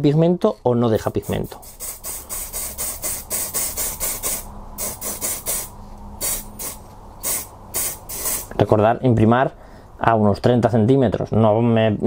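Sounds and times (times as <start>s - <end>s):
aerosol spray can hissing: 1.0s - 8.6s.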